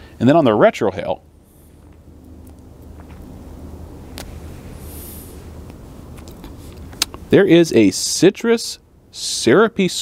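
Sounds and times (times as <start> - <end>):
low outdoor rumble: 0.0 - 10.0
man exhaling smoke: 4.6 - 5.6.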